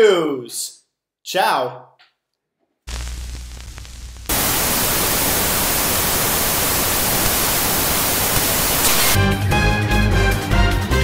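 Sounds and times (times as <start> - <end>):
low electrical hum: 2.9 - 6.2
television static hiss: 2.9 - 9.2.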